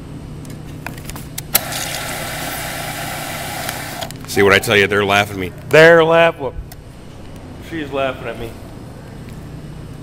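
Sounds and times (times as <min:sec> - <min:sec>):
soda pouring and fizzing: 0:01.6 - 0:04.0
soda dispenser clicking on: 0:01.6 - 0:04.2.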